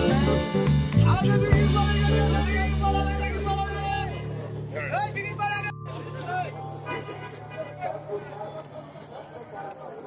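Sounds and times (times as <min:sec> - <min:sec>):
background music: 0:00.0 - 0:09.3.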